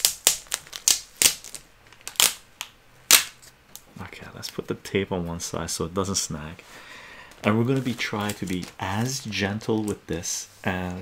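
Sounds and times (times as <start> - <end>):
adhesive tape peeling off plastic: 0.0 - 3.5.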